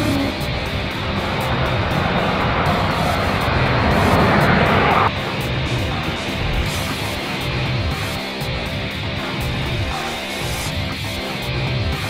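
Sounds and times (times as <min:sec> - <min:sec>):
rocket engine rushing: 0:00.0 - 0:06.8
rock music with electric guitar: 0:00.0 - 0:12.0.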